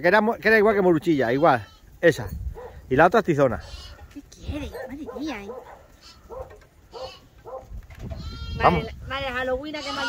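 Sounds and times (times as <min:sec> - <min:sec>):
lambs bleating: 0:03.6 - 0:04.1, 0:06.0 - 0:07.3, 0:08.1 - 0:09.0, 0:09.7 - 0:10.0.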